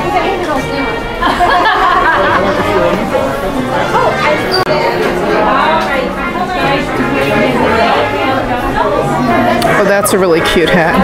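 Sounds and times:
background music: 0.0s - 11.0s
shoppers chattering: 0.0s - 11.0s.

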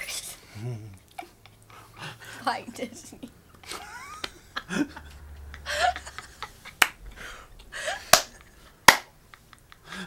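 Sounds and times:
people laughing: 2.9s - 10.0s.

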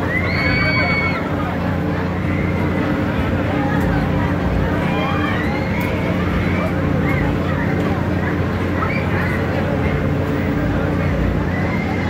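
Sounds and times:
riders screaming: 0.0s - 1.3s
ride machinery humming: 0.0s - 12.0s.

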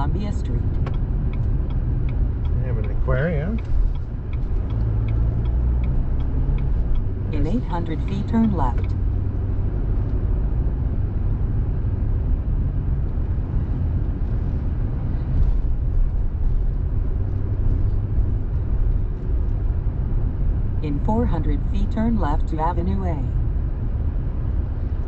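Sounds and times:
car engine rumble: 0.0s - 25.0s
tyres on road: 0.0s - 25.0s.

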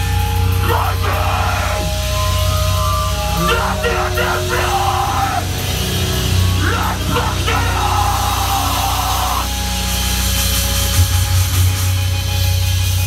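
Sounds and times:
live heavy band playing loud: 0.0s - 13.0s.

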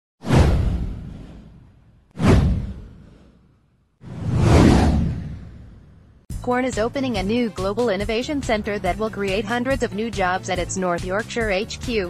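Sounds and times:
whoosh sound effect: 0.2s - 3.4s, 4.0s - 6.0s
deep low boom: 0.3s - 3.2s, 4.1s - 6.2s.

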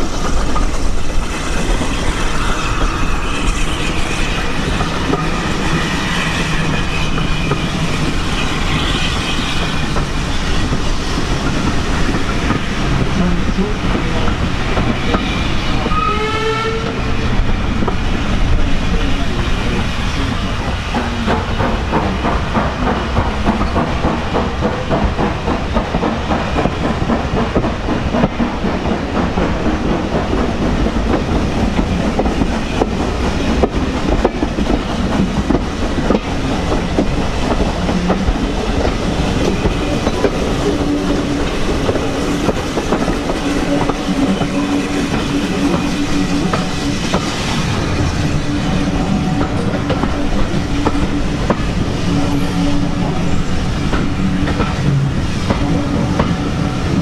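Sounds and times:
railway carriage rumble: 0.0s - 57.0s.

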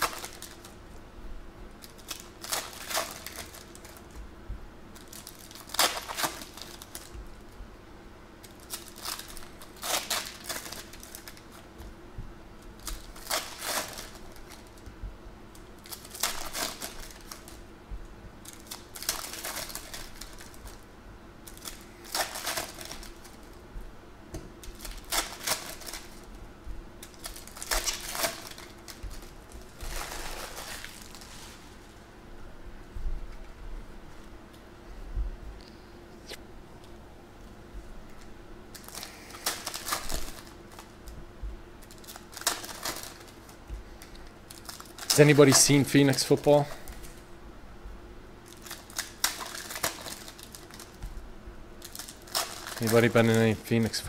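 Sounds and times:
foil wrapper crinkling: 0.0s - 1.0s, 1.8s - 4.2s, 4.9s - 7.6s, 8.4s - 11.8s, 12.6s - 17.7s, 18.4s - 23.6s, 24.6s - 26.4s, 27.0s - 32.0s, 38.7s - 41.2s, 41.8s - 47.2s, 48.4s - 51.1s, 51.8s - 54.0s.

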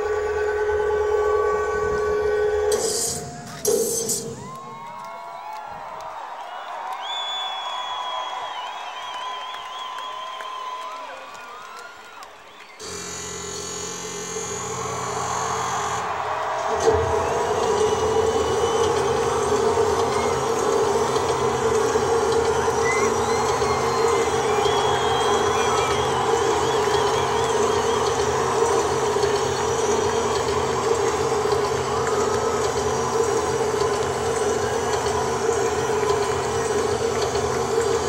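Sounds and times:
crowd cheering and chanting: 0.0s - 12.9s, 14.0s - 38.0s
whistle: 6.5s - 11.0s, 14.4s - 33.9s.

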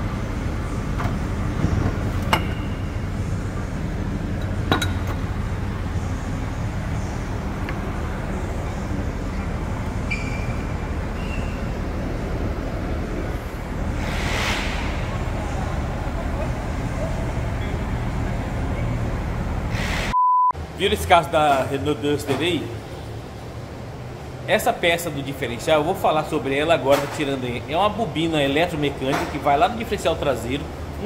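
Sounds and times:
low mechanical hum: 0.0s - 20.9s
burst of hiss: 14.0s - 15.1s
electronic beep: 20.1s - 20.5s
man speaking: 20.8s - 22.8s.

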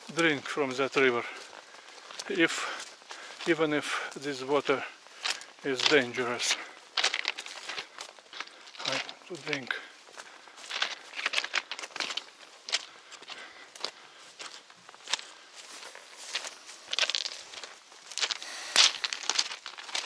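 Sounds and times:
footsteps crunching on gravel: 0.0s - 20.0s.

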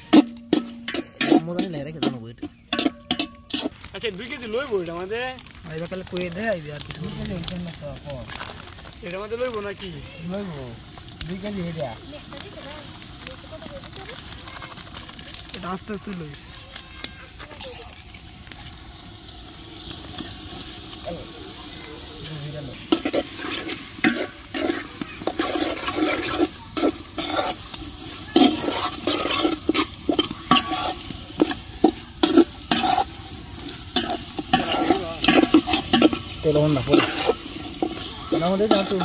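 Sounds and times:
metal spatula scraping a pot: 0.0s - 4.9s, 22.7s - 39.0s
food sizzling: 0.0s - 39.0s.

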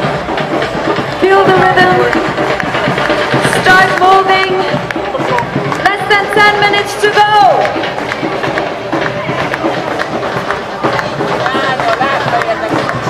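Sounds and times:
crowd noise: 0.0s - 13.0s
music over loudspeakers: 0.0s - 13.0s.

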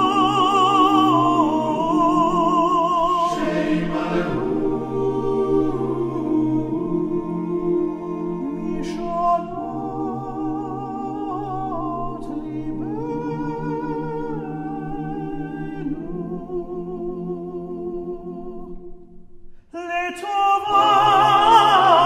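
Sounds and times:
men's choir humming and singing: 0.0s - 18.8s.

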